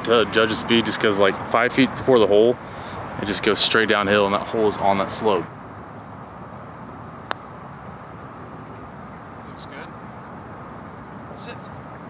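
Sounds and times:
putter striking golf ball: 7.2 - 7.5.

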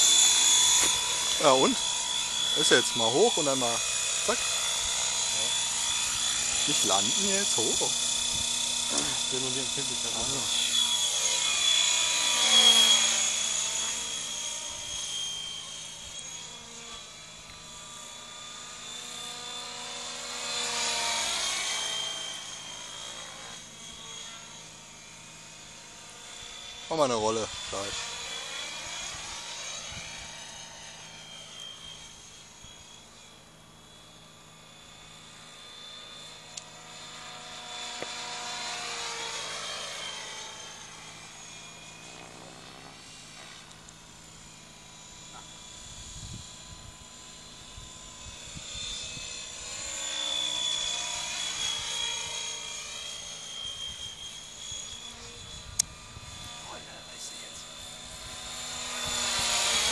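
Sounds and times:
model helicopter whine: 0.0 - 59.9.

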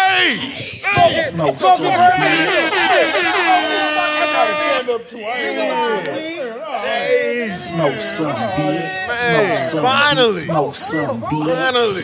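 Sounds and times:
people shouting excitedly: 0.0 - 12.0
air horn blast: 2.2 - 5.0.

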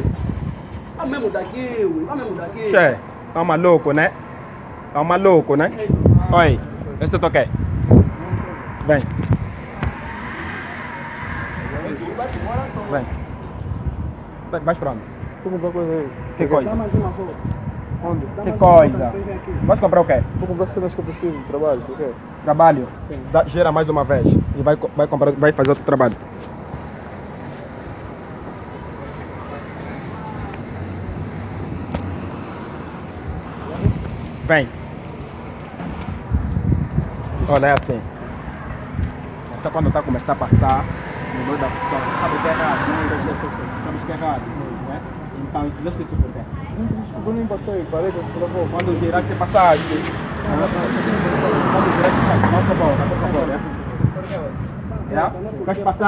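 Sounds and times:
street noise: 0.0 - 56.0
vehicle driving past: 7.0 - 20.9, 35.8 - 46.2, 47.1 - 54.6.

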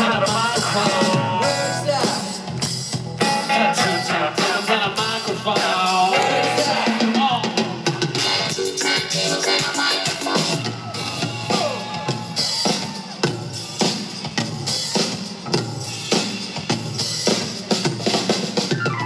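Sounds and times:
drum kit beat: 0.0 - 19.0
live rock band playing: 0.0 - 19.0.

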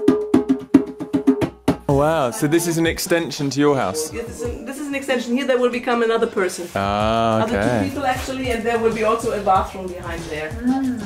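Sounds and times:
djembe played by hand: 0.0 - 2.0.

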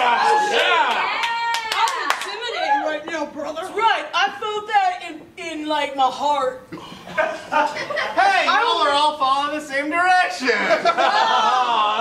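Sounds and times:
man shouting: 0.0 - 1.1
sharp hand claps: 0.8 - 2.4.

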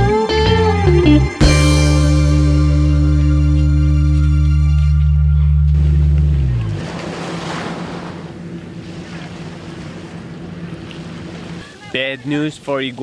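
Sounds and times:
background music: 0.0 - 5.8
ocean surf: 6.5 - 13.0
steady low hum: 7.8 - 11.6.

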